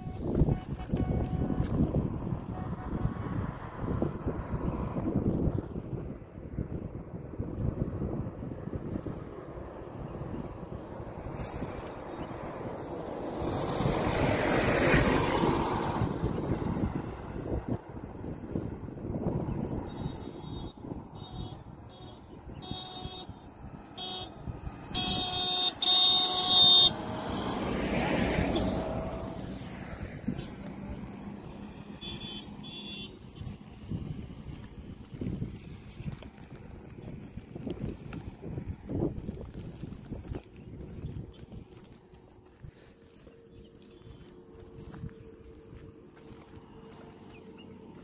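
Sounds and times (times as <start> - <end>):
vehicle horn toots and blasts: 0.0 - 3.4, 19.9 - 23.4, 24.0 - 27.6, 30.3 - 30.6, 31.9 - 33.5
vehicle passing: 0.0 - 6.6, 7.8 - 48.0.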